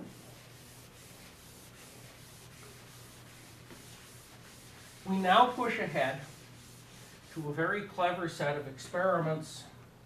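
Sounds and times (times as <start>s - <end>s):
eraser rubbing on chalkboard: 0.0s - 7.5s.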